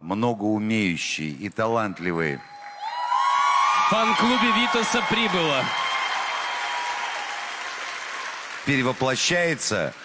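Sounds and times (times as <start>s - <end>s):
studio audience applauding: 1.8s - 10.0s.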